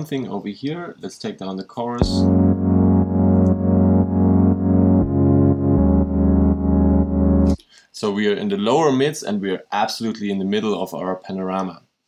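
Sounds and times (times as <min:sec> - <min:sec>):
dark synth pad chords: 0:02.0 - 0:07.6.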